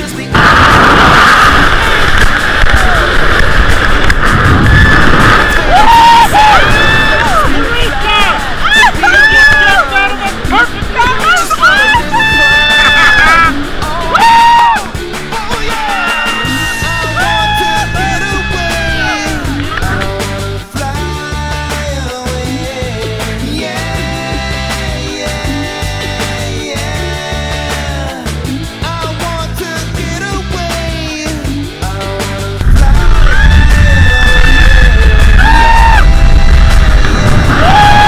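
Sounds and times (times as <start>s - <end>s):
rock music: 0.0s - 38.0s
wind on microphone: 0.4s - 8.6s, 32.6s - 38.0s
people whooping and yelling: 2.6s - 3.3s, 4.5s - 20.2s, 32.8s - 38.0s.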